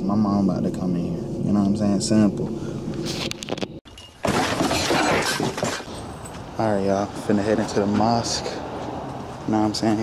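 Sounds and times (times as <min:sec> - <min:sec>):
glass shattering: 0:03.9 - 0:06.3.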